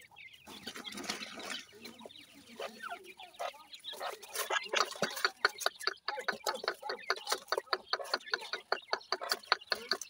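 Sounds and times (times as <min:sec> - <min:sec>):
chicks peeping: 0:00.0 - 0:10.0
low clucking calls: 0:00.4 - 0:10.0.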